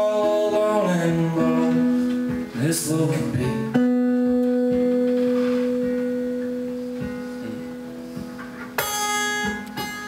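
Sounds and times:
guitar chord strummed: 0:00.0 - 0:10.0
acoustic guitar note ringing: 0:03.7 - 0:10.0.

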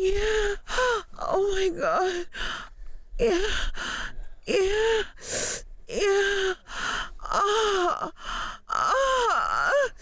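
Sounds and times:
woman moaning and gasping: 0:00.0 - 0:10.0.

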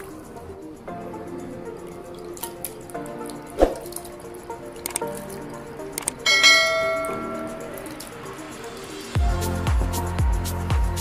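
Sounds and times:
background music: 0:00.0 - 0:11.0
water dripping and splashing: 0:01.6 - 0:09.2
sharp click: 0:04.8 - 0:05.3, 0:06.0 - 0:06.2
bell-like notification chime: 0:06.3 - 0:08.3.

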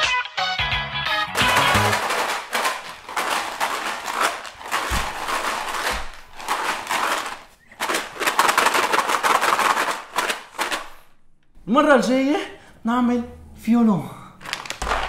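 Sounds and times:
beans rattling in tambourine: 0:01.4 - 0:11.0.

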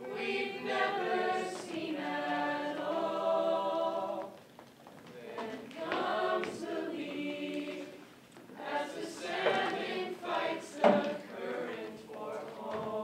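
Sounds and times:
cast singing in chorus: 0:00.0 - 0:04.4, 0:05.1 - 0:13.0.

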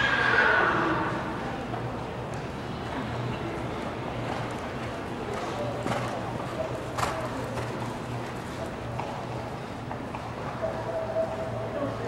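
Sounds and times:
murmur of voices: 0:00.0 - 0:12.0.

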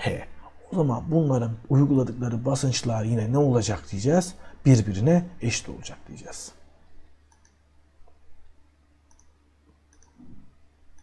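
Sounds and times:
low steady hum: 0:00.0 - 0:11.0
computer mouse clicks: 0:07.3 - 0:08.2, 0:09.1 - 0:11.0.

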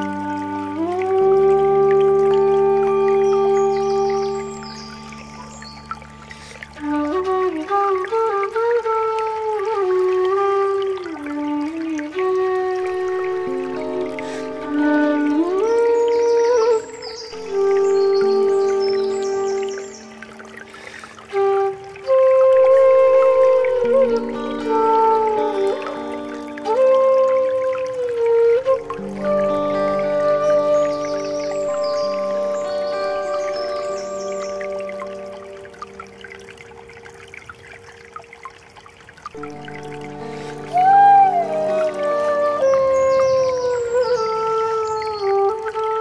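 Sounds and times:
held flute note: 0:00.0 - 0:38.0, 0:39.3 - 0:46.0
brook trickling: 0:00.0 - 0:46.0.

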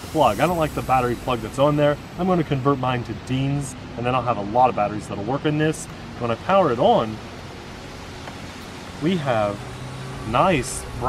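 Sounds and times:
outdoor ambience hiss: 0:00.0 - 0:11.0.

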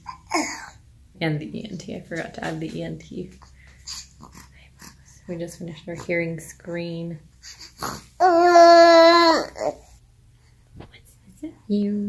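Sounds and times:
baby grunting: 0:00.0 - 0:00.8, 0:03.9 - 0:05.0, 0:07.5 - 0:09.9
low room hum: 0:00.0 - 0:12.0
baby snuffling: 0:07.4 - 0:08.4.

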